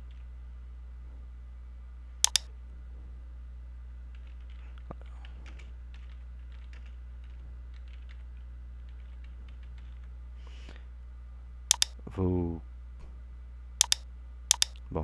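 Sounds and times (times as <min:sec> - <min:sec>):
steady low hum: 0:00.0 - 0:15.0
mouse double click: 0:02.2 - 0:02.5, 0:11.7 - 0:12.0, 0:13.8 - 0:14.8
keyboard key taps: 0:11.7 - 0:11.9, 0:13.8 - 0:14.8.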